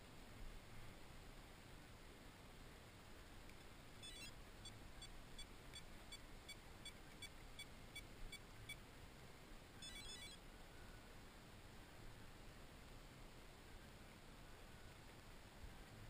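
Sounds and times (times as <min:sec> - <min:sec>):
background hiss: 0:00.0 - 0:16.0
electronic beeps: 0:04.0 - 0:08.8, 0:09.8 - 0:10.4.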